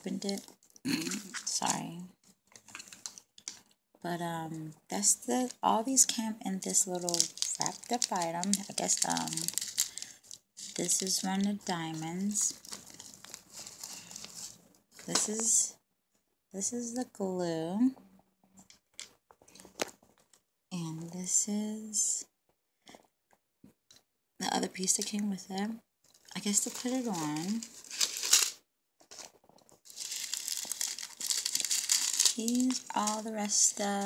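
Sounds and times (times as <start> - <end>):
plastic clicks and crinkles: 0.0 - 3.8, 5.5 - 15.5, 18.6 - 20.5, 26.0 - 34.0.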